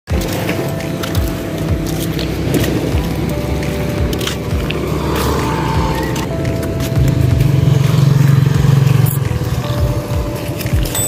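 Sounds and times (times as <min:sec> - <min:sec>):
vehicle engine humming: 0:00.1 - 0:11.0.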